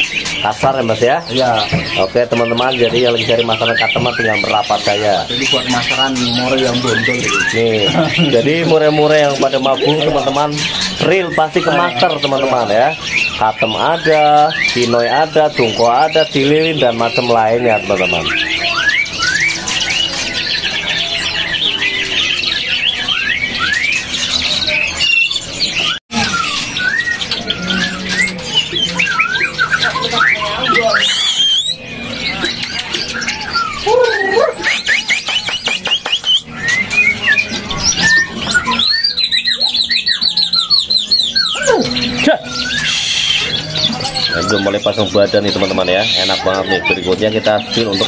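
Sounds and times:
bird fast trill: 0.0s - 48.0s
songbirds singing: 0.0s - 48.0s.

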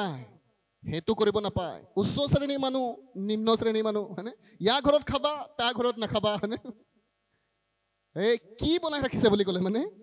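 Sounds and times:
man speaking into a microphone: 0.0s - 6.9s, 8.1s - 10.0s.

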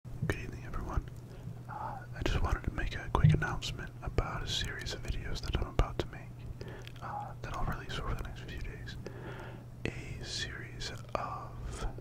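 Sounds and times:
man whispering into microphone: 0.2s - 9.1s, 9.8s - 12.0s.

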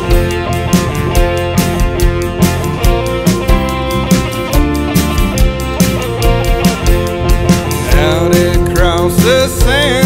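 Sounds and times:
drum kit steady beat: 0.0s - 10.0s
full band playing: 0.0s - 10.0s.

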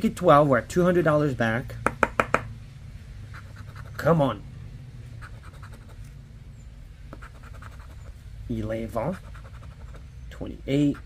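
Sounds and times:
scratch-off ticket scraping: 7.2s - 8.1s, 9.0s - 10.0s.

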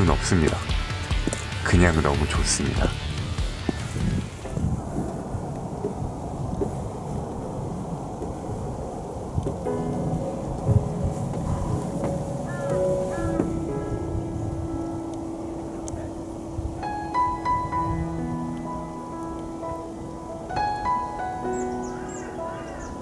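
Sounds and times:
background music with held notes: 0.0s - 4.4s, 9.7s - 23.0s
wind rumbling on microphone: 0.0s - 23.0s.

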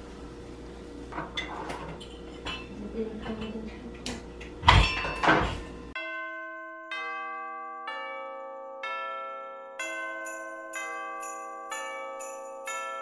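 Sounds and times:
bell-like music notes: 5.9s - 13.0s.

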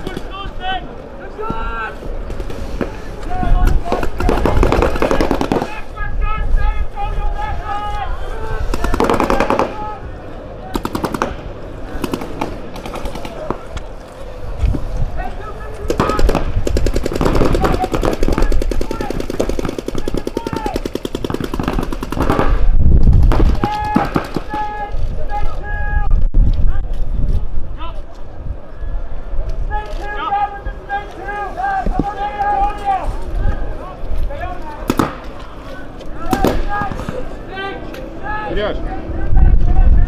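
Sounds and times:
paintball markers firing: 15.9s - 22.6s, 34.8s - 35.5s
people shouting: 17.3s - 20.8s, 23.6s - 26.1s, 29.7s - 33.9s, 35.7s - 39.2s.

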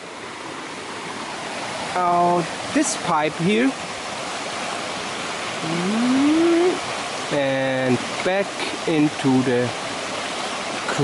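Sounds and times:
man humming: 5.6s - 6.8s.

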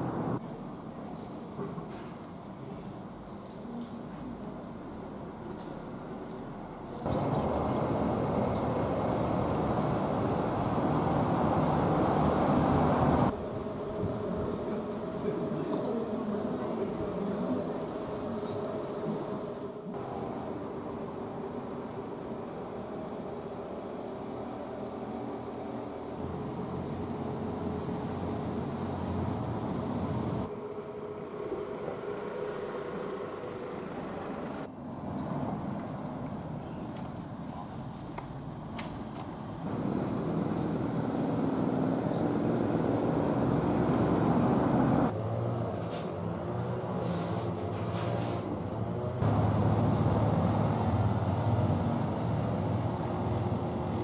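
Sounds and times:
car engine approaching: 5.4s - 34.7s, 39.6s - 47.0s, 48.6s - 54.0s.

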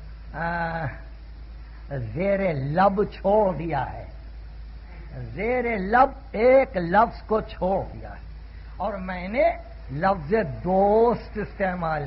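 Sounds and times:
low tape hum: 0.0s - 12.0s.

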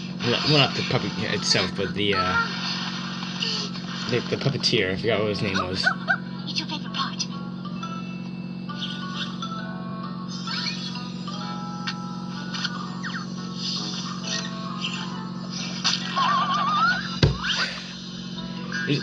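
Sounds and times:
light cartoon music: 0.0s - 19.0s
steady low hum: 0.0s - 19.0s.

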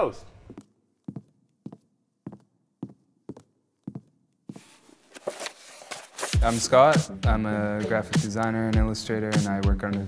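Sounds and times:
footsteps on wooden floor: 0.4s - 6.5s.

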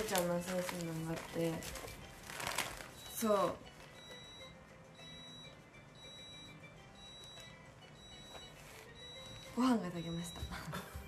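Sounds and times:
rice cooker beeping: 3.0s - 11.0s.

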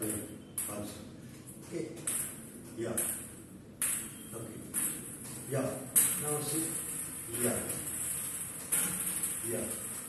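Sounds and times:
table tennis bat hitting ball: 3.0s - 5.1s.

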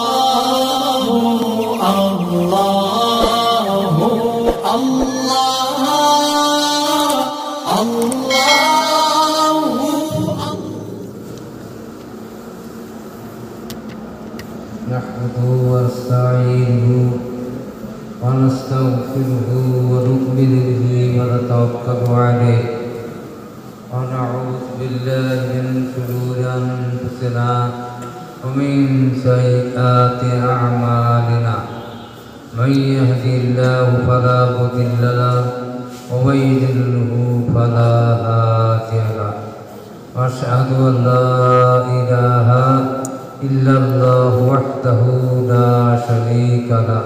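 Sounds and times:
man chanting into a microphone: 0.0s - 11.2s, 14.8s - 47.0s.

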